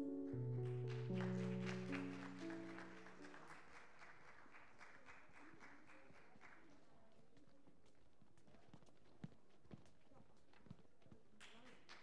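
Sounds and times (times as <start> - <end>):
children's footsteps on wooden stage: 7.1 - 11.4.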